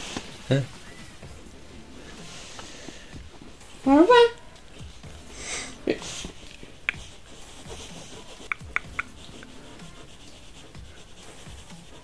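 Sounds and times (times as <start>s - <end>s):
rustling on a bedsheet: 0.0s - 8.4s.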